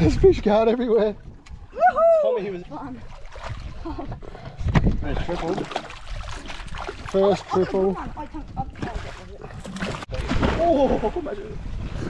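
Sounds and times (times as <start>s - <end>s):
fish thrashing and splashing: 2.7s - 3.9s, 5.1s - 10.7s.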